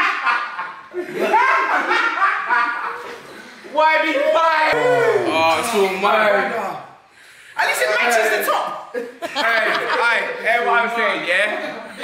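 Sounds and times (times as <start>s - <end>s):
people talking and exclaiming: 3.7s - 6.8s.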